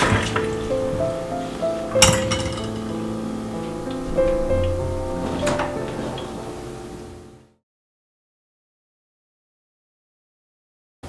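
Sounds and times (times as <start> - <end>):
background music: 0.0 - 7.6
glass mug clinking on wire rack: 2.0 - 2.9.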